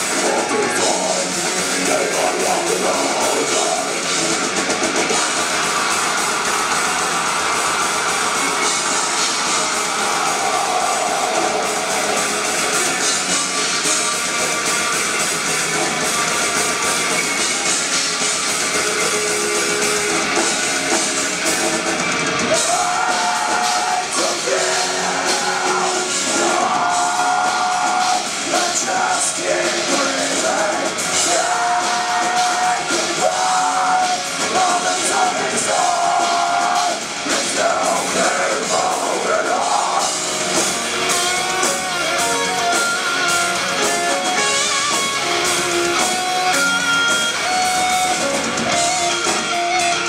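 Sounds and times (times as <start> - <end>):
live metal band playing: 0.0 - 50.0.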